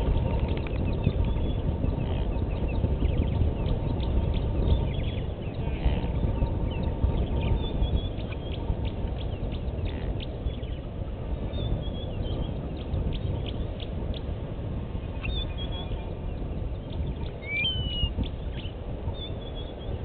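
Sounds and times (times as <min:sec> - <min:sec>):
birds chirping: 0:00.0 - 0:14.4, 0:15.1 - 0:20.0
steady low rumble: 0:00.0 - 0:20.0.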